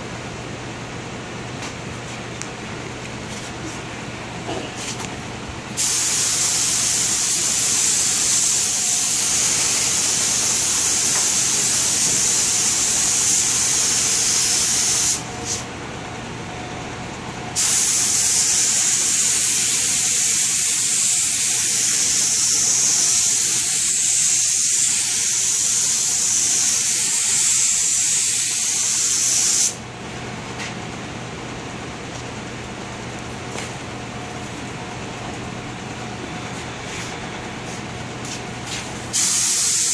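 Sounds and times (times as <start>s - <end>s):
spray gun hissing: 5.8s - 15.2s, 17.6s - 29.8s, 39.0s - 39.9s.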